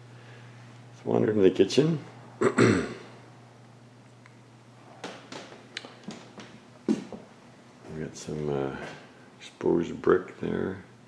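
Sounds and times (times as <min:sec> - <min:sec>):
man clearing throat: 0:02.4 - 0:03.2.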